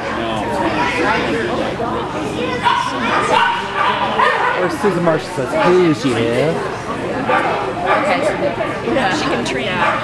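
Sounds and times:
people talking: 0:00.0 - 0:10.0
dog barking: 0:02.6 - 0:05.9, 0:07.3 - 0:08.2, 0:09.8 - 0:10.0.

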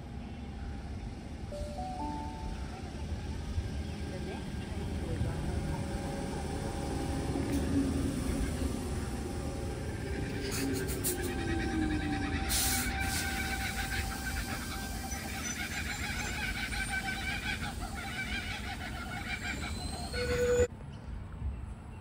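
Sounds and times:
electric train whine: 0:00.0 - 0:20.7
wheels running on rail: 0:00.0 - 0:20.7.

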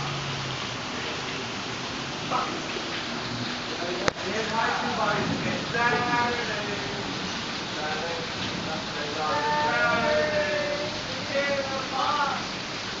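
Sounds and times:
heavy rain pouring: 0:00.0 - 0:13.0
people talking: 0:02.3 - 0:02.7, 0:03.7 - 0:12.5.

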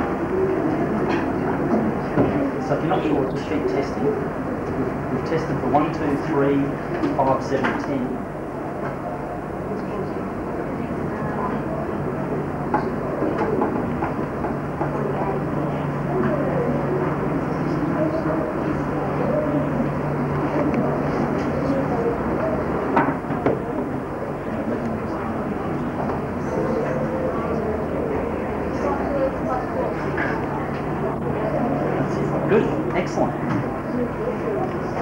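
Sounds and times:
steady low hum: 0:00.0 - 0:35.0
students chattering: 0:00.0 - 0:35.0.

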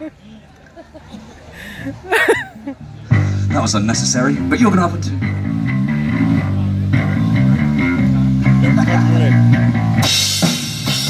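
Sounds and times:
electric bass riff: 0:02.8 - 0:11.0
electric guitar riff: 0:03.1 - 0:11.0.

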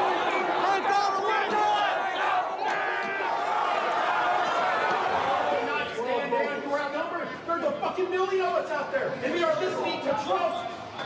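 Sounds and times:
crowd shouting and yelling: 0:00.0 - 0:11.0.

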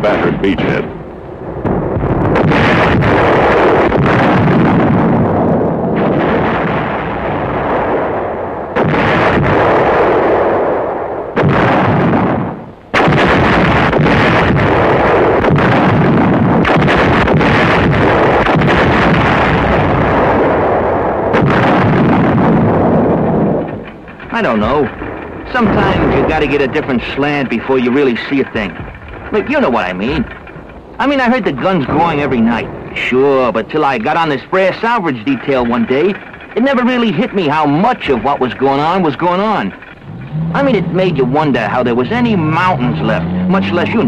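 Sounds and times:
artillery guns firing: 0:00.0 - 0:44.0
sudden blast: 0:00.0 - 0:44.0.

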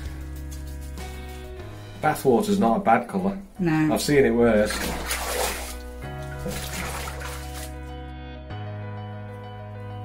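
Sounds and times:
background music with held notes: 0:00.0 - 0:10.0
water splashing in a bathtub: 0:04.0 - 0:07.9.

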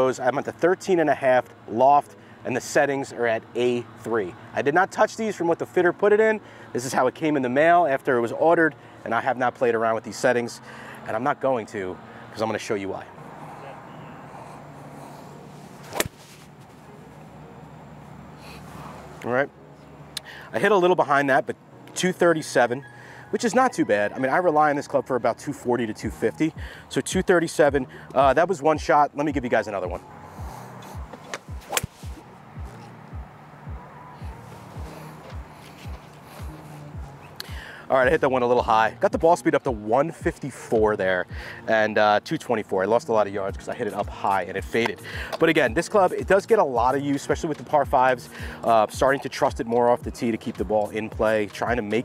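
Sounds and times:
club swish: 0:15.7 - 0:16.6, 0:30.4 - 0:33.0
golf club striking ball: 0:15.8 - 0:16.4, 0:30.5 - 0:32.9
background music with low beat: 0:22.8 - 0:52.0.

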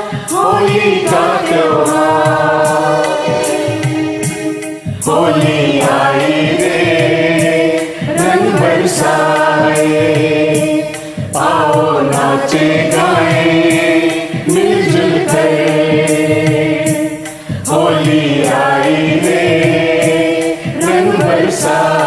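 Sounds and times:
choir-like voices singing: 0:00.0 - 0:22.0
steady percussion beat: 0:00.0 - 0:22.0.

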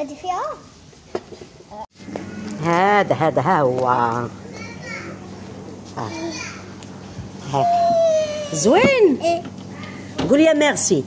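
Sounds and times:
faint children chattering: 0:04.4 - 0:06.8
woman speaking: 0:08.5 - 0:09.2, 0:10.2 - 0:11.0.

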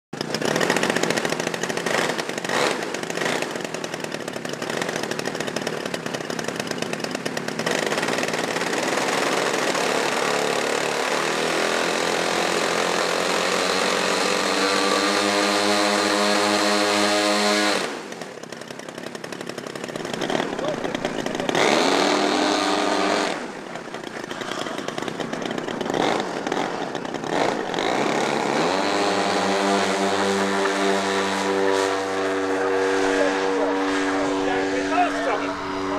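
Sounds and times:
model airplane engines droning: 0:00.2 - 0:35.9.

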